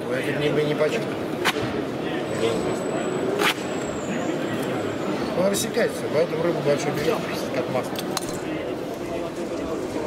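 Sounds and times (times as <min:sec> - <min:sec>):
chatter of a busy hall: 0:00.0 - 0:10.0.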